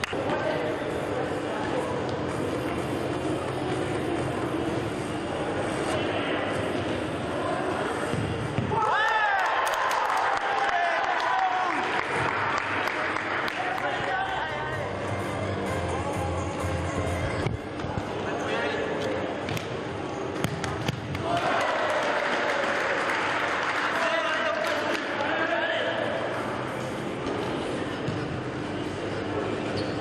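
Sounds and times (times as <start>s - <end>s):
ball kicks and bounces: 8.1s - 8.8s, 20.4s - 21.3s.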